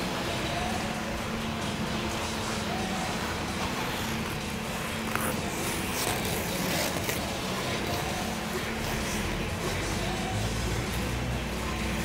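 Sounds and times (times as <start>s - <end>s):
rumbling ice rink background: 0.0s - 12.0s
skate blades scraping ice: 3.7s - 9.2s.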